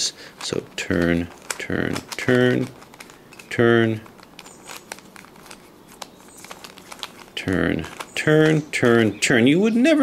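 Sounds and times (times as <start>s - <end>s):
plastic puzzle cube clicking: 0.4s - 9.2s.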